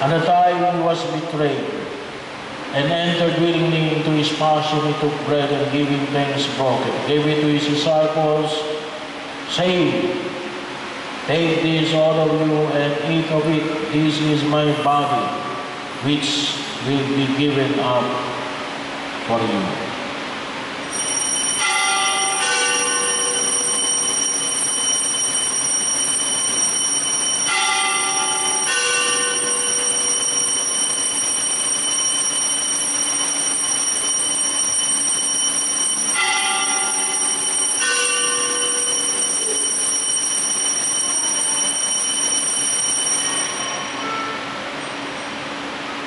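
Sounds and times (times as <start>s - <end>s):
louder bell strokes: 20.8s - 45.4s
altar bells ringing: 20.9s - 45.3s.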